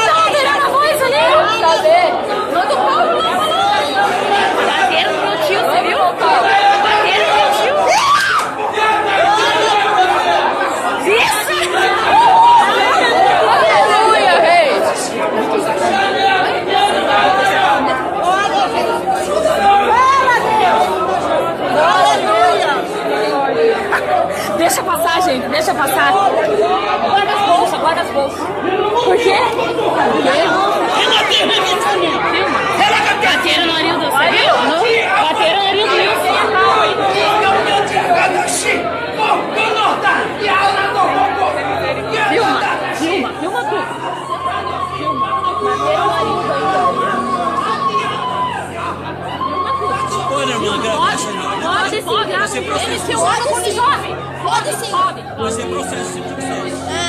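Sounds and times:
many voices talking in a hall: 0:00.0 - 0:57.0.

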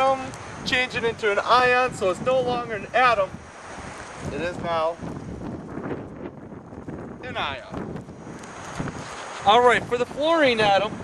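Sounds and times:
wind blowing on microphone: 0:00.0 - 0:11.0.

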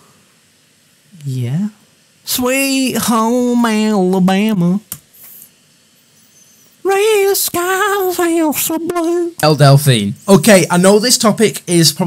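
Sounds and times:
man singing: 0:02.3 - 0:04.9, 0:06.8 - 0:09.4.

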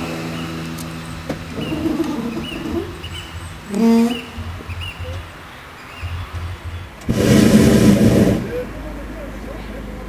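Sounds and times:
propane burner blast: 0:07.0 - 0:08.8.

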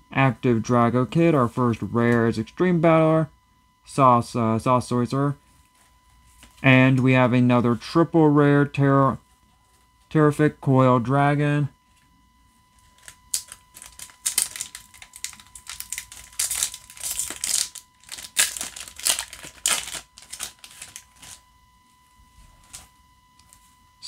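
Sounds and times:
foil wrapper tearing and crinkling: 0:13.0 - 0:21.4.

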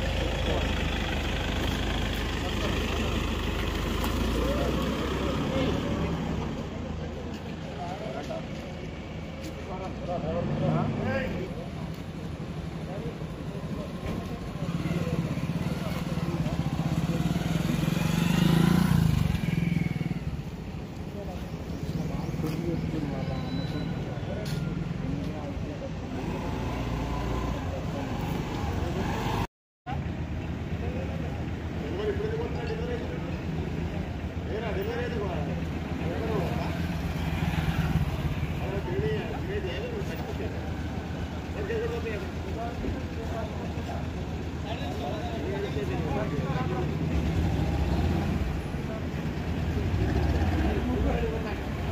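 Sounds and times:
engine idling: 0:00.0 - 0:04.8
men talking: 0:02.0 - 0:17.8, 0:21.0 - 0:26.4, 0:30.8 - 0:37.0, 0:38.2 - 0:49.2.

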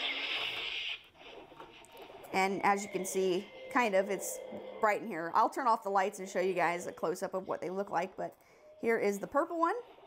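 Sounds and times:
toy hissing sound effect: 0:00.0 - 0:01.1.

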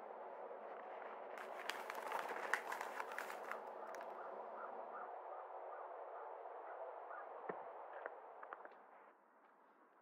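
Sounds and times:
steady outdoor hum: 0:00.0 - 0:10.0
paper rustling and crinkling: 0:01.4 - 0:04.0.

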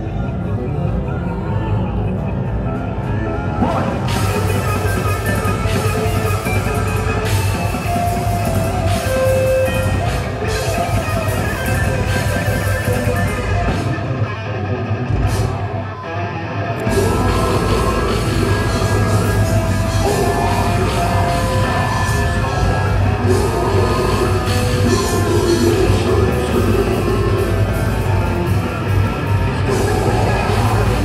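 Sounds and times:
death metal band playing live: 0:00.0 - 0:31.0.

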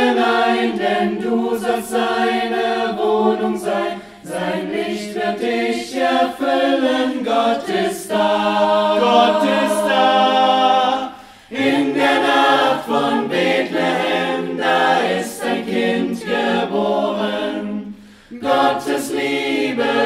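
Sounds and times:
mixed choir singing unaccompanied: 0:00.0 - 0:20.0.

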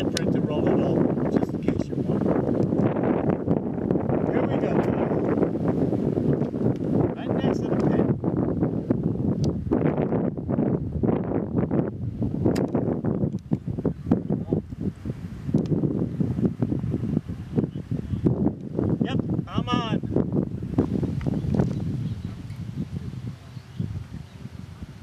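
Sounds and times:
wind rumbling on microphone: 0:00.0 - 0:25.0.

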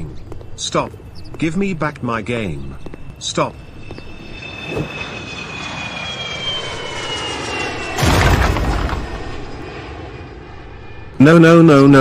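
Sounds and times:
whistling jet-like tone falling: 0:03.1 - 0:08.0
loud blast: 0:07.9 - 0:09.5.

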